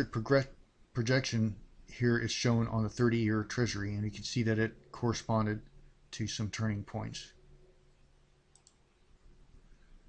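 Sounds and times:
faint steady hum: 0:00.0 - 0:10.0
computer mouse clicks: 0:08.5 - 0:08.9.

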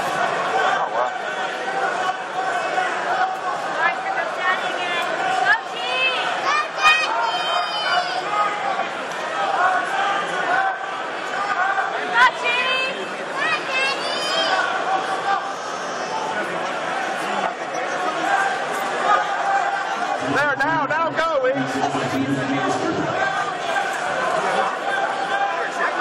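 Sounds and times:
crowd voices in a large hall: 0:00.0 - 0:26.0.

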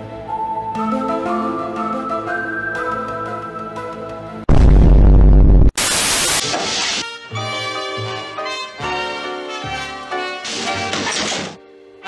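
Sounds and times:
cartoon soundtrack music: 0:00.0 - 0:05.6, 0:06.4 - 0:12.0
tv static hiss: 0:05.8 - 0:06.4.

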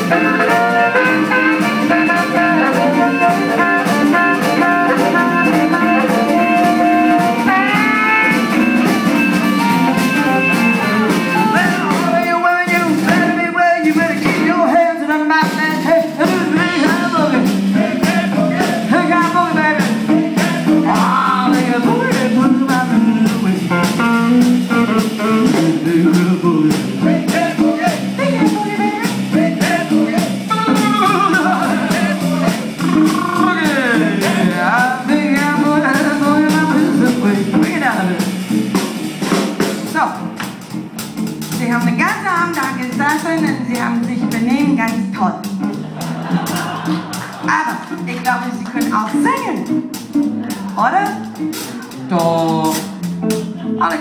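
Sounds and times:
electric guitar: 0:00.0 - 0:12.2, 0:19.3 - 0:39.4
drum kit beat: 0:00.0 - 0:54.0
live blues band playing: 0:00.0 - 0:54.0.

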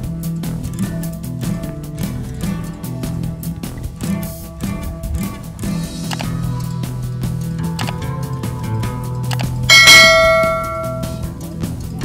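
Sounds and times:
background music: 0:00.0 - 0:12.0
bell-like ding: 0:09.7 - 0:11.3.

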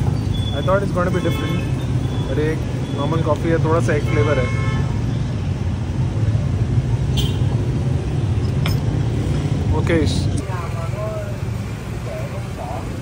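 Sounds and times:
street traffic rumble: 0:00.0 - 0:13.0.

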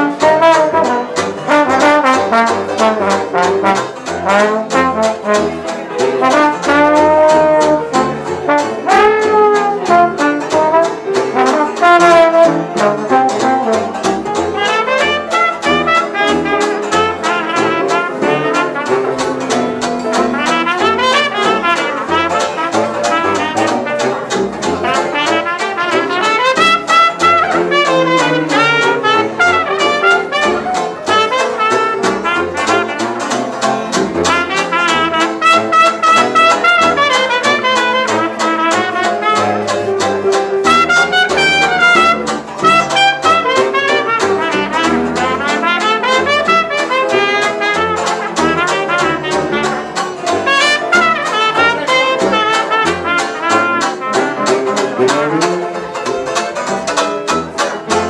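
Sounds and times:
banjo strumming: 0:00.0 - 0:58.0
bass saxophone bass line: 0:00.0 - 0:58.0
cornet solo: 0:00.0 - 0:58.0
jazz band playing: 0:00.0 - 0:58.0.

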